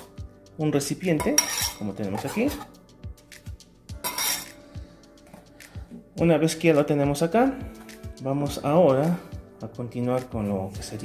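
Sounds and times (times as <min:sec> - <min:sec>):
background music with low beat: 0:00.0 - 0:11.0
knife scraping a glass bowl: 0:01.3 - 0:02.7, 0:04.0 - 0:04.6.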